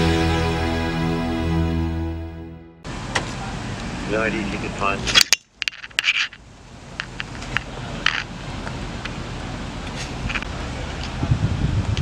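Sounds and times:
street background noise: 2.8 - 12.0.

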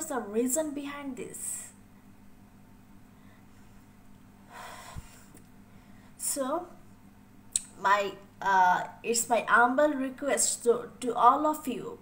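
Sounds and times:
steady low hum: 0.0 - 12.0
woman breathing: 3.1 - 6.2.

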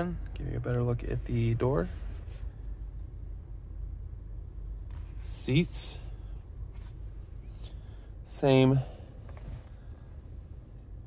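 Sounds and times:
car cabin rumble: 0.0 - 11.0.

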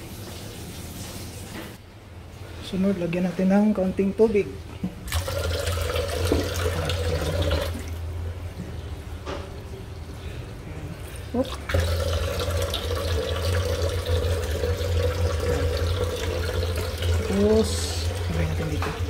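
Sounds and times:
tap running into steel sink: 6.2 - 6.7.

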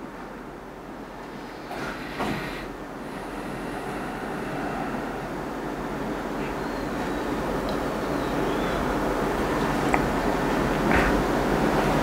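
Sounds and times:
steady rushing noise: 0.0 - 12.0.

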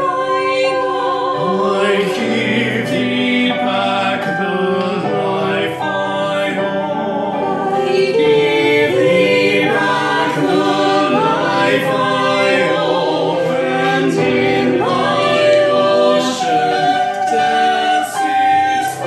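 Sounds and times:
mixed group singing in harmony: 0.0 - 19.0.

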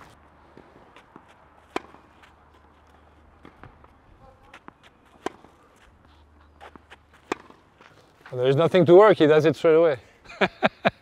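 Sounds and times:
tennis ball bouncing: 0.0 - 8.3
tennis racquet hitting ball: 0.6 - 2.4, 3.4 - 5.9, 6.5 - 8.0.

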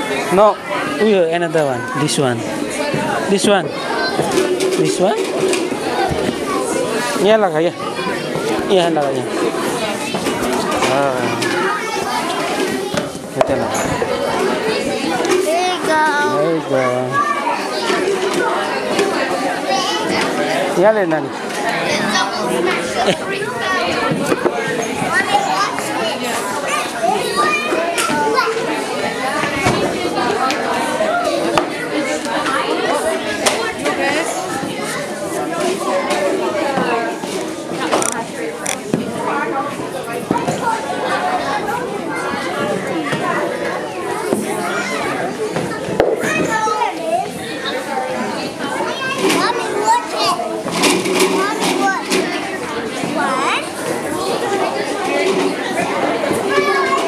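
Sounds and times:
children talking and calling out: 0.0 - 57.0.

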